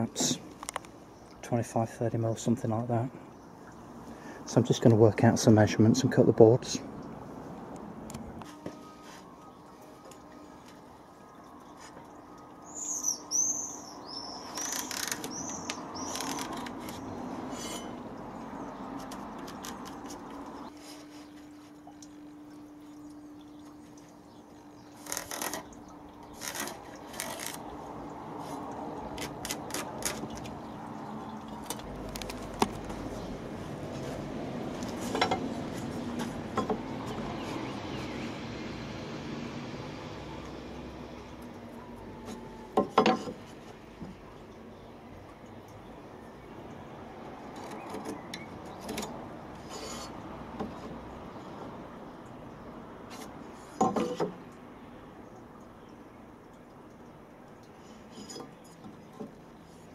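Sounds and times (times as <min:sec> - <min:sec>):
small bird chirping: 0:12.3 - 0:17.2.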